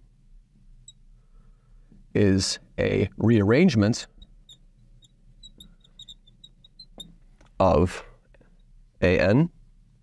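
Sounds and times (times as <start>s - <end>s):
marker squeaking on glass: 4.0s - 7.2s.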